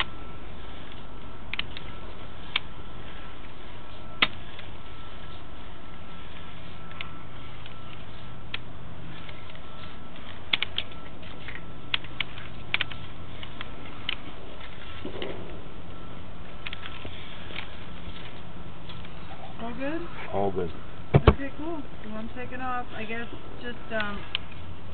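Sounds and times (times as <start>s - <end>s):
electrical hum: 0.0s - 24.9s
cable clicks and taps: 10.5s - 14.2s.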